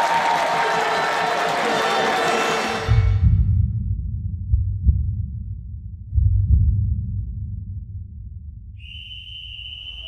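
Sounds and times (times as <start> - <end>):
low rumble: 2.9 - 8.8
high-pitched whistle: 8.8 - 10.0.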